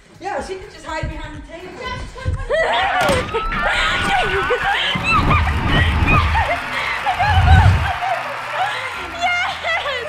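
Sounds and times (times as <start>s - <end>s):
low rumbling thumps of movement: 0.6s - 2.6s, 3.4s - 8.0s
girl laughing and squealing: 2.4s - 7.9s.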